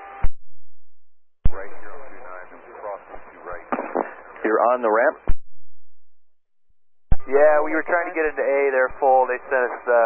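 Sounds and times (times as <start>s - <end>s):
radio hiss: 1.5s - 5.2s, 7.6s - 10.0s
faint indistinct radio speech: 1.5s - 5.3s, 7.2s - 10.0s
radio transmission click: 3.1s - 4.6s.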